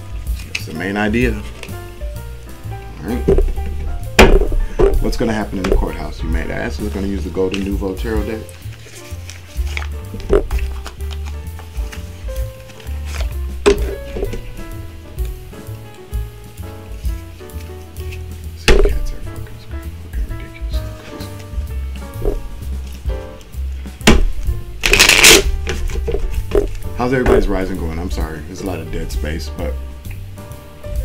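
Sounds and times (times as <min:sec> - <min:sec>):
soft background music: 0:00.0 - 0:31.0
cards being shuffled: 0:00.1 - 0:01.8, 0:03.0 - 0:27.5
card taps: 0:09.2 - 0:14.6, 0:17.5 - 0:19.6.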